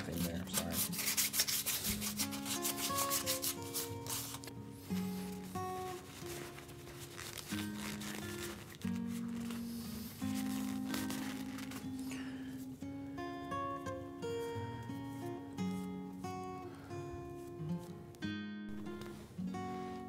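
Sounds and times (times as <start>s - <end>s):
sandpaper rubbing on wood: 0.0s - 11.6s
plucked guitar music: 0.0s - 20.0s.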